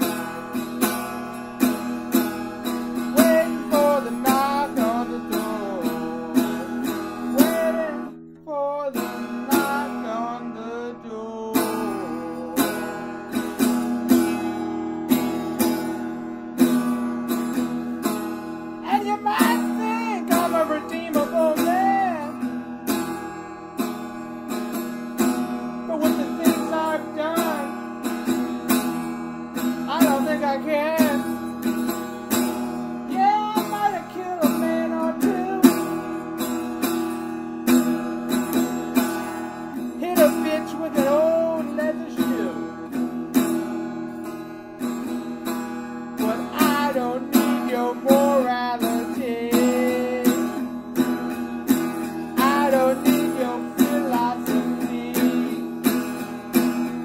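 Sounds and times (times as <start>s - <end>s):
acoustic guitar strumming: 0.0s - 57.0s.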